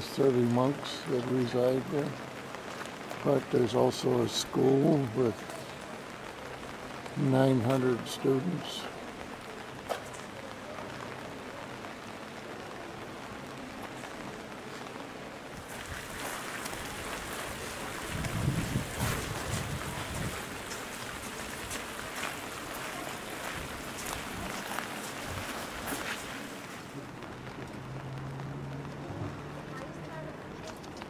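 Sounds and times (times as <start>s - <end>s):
rain on pavement and umbrellas: 0.0s - 31.0s.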